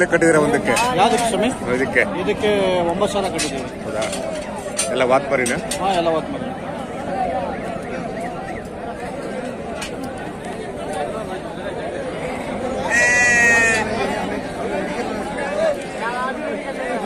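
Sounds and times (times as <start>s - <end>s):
babble of many voices: 0.0s - 17.0s
sheep bleating: 12.8s - 13.9s.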